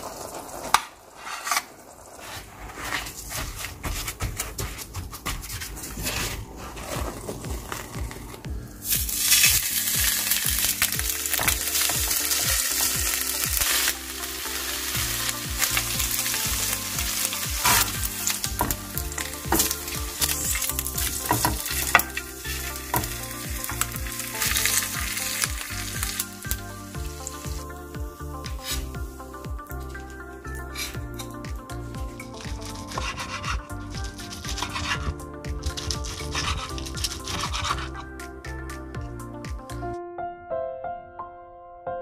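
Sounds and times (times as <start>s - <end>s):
soft background music: 2.2s - 42.0s
meat sizzling in a frying pan: 8.8s - 29.7s.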